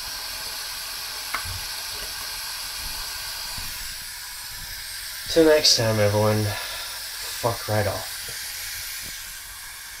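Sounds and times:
steady hiss: 0.0 - 10.0.

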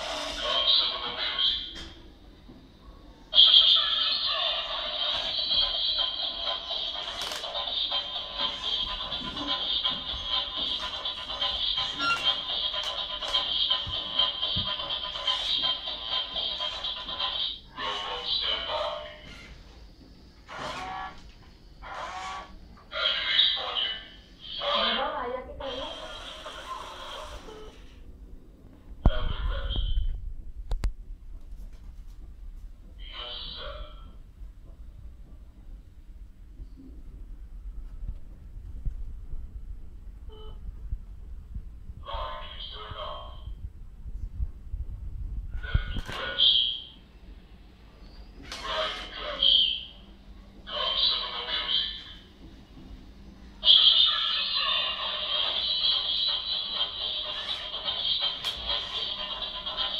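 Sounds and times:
toy robot electronic sound effects: 3.4 - 19.4, 21.8 - 24.8, 25.7 - 27.8, 53.6 - 59.9.

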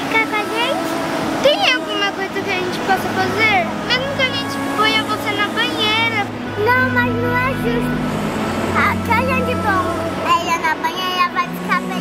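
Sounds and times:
girl speaking in a high voice: 1.4 - 8.0, 8.8 - 12.0.

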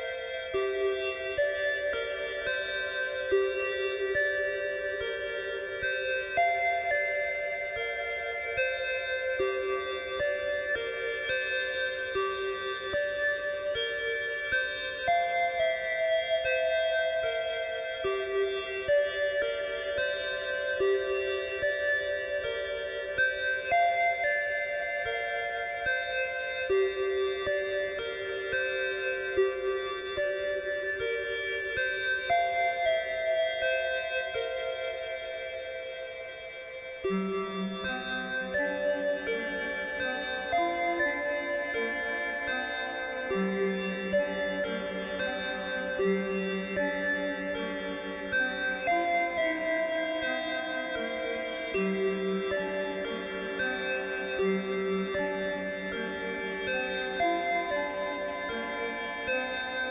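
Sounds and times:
keyboard playing slow melody: 0.0 - 59.9.

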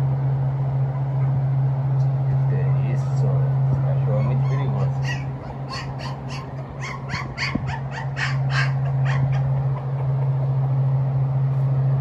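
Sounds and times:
steady low hum: 0.0 - 12.0
puppies squealing: 4.1 - 10.3.

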